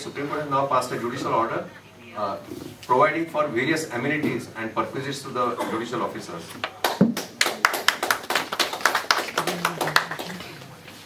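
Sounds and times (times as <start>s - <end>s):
scattered hand claps: 6.6s - 10.5s.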